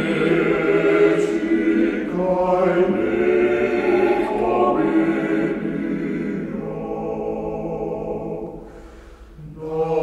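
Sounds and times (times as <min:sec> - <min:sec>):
male choir singing a cappella: 0:00.0 - 0:08.8, 0:09.4 - 0:10.0.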